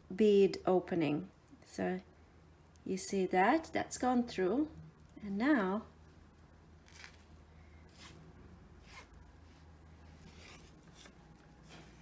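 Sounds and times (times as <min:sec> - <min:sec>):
low room hum: 0:00.0 - 0:12.0
ribbon rustling: 0:06.8 - 0:12.0.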